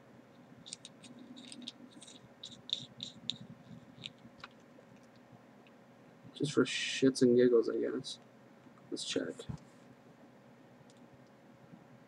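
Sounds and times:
small clicks and scratches: 0.3 - 5.8.

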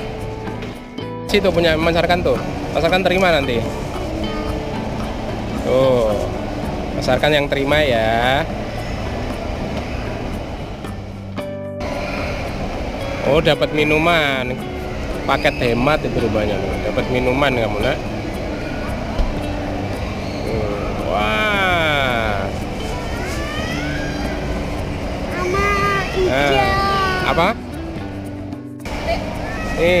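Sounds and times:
music playing: 0.0 - 30.0
shopping mall din: 0.0 - 30.0.

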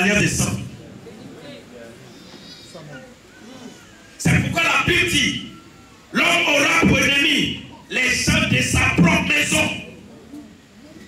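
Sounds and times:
faint background voices: 0.6 - 4.2, 9.8 - 11.0.

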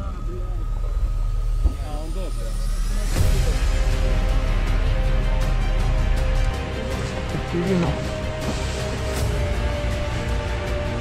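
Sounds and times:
background music: 0.0 - 11.0
men talking low: 7.2 - 8.6.

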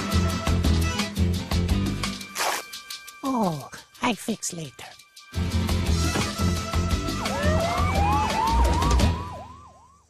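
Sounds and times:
siren wailing: 7.0 - 10.0
siren yelping: 7.0 - 10.0.

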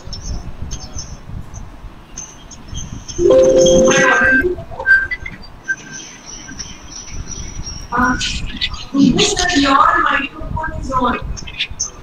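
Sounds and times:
short high chirps: 3.2 - 4.6.

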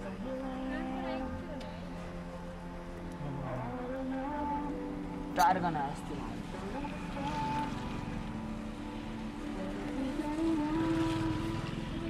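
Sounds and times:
background music: 0.0 - 12.0
engine and road rumble: 0.0 - 12.0.

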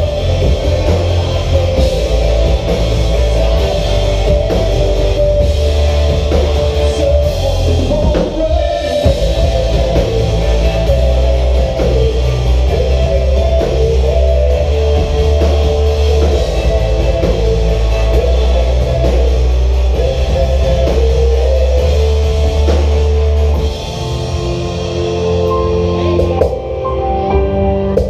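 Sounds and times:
bass guitar: 0.0 - 28.0
drum kit: 0.0 - 28.0
electric guitar sliding notes: 0.0 - 28.0.

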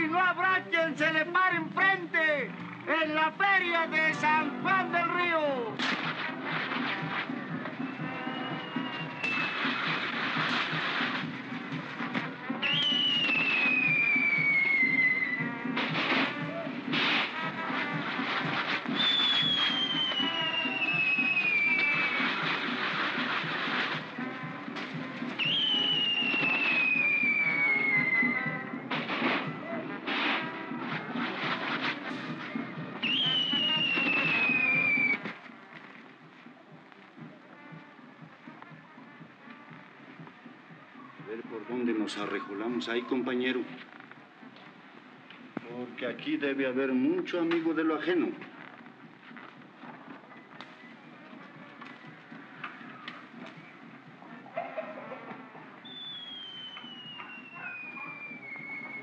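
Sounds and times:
fireworks bangs and crackling: 5.1 - 59.0
falling firework whistles: 5.9 - 11.4, 12.0 - 35.4, 55.8 - 59.0.

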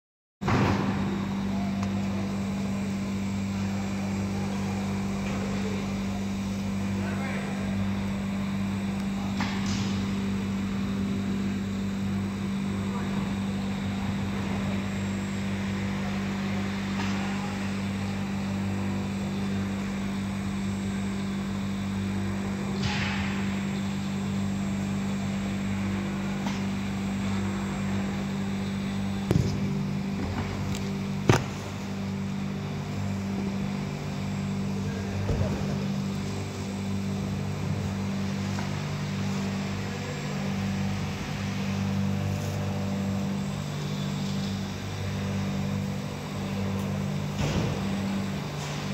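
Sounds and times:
low machine hum: 0.4 - 48.9.

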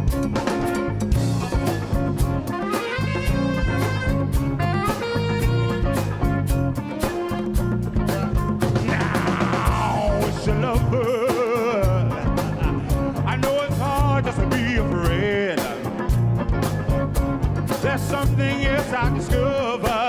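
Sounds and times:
funk band playing: 0.0 - 20.0
person singing wordless vocals: 8.6 - 16.0, 17.8 - 20.0.

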